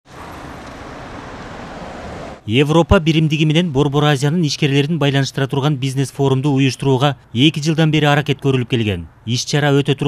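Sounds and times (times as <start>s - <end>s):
cars driving past: 0.0s - 2.5s.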